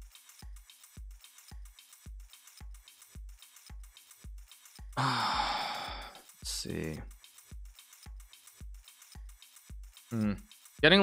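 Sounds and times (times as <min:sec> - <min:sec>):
man groaning: 0:05.0 - 0:06.2
man sighing: 0:05.0 - 0:06.2.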